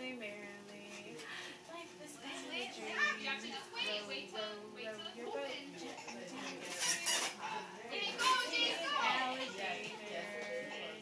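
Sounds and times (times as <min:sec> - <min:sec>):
indistinct voices: 0:00.0 - 0:11.0
children chattering: 0:05.0 - 0:11.0.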